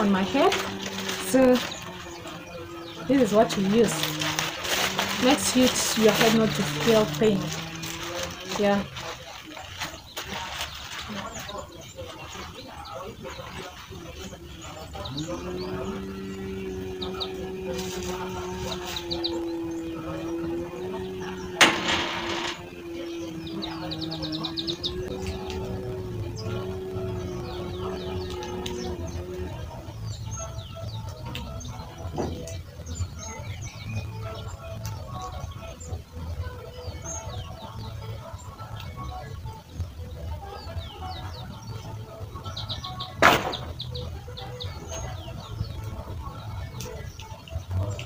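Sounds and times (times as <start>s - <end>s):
birds chirping in trills: 0.0s - 48.0s
sharp knock: 43.2s - 43.7s.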